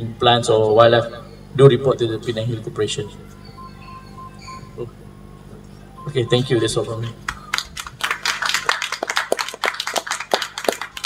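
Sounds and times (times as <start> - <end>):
audience applauding: 7.3 - 11.0.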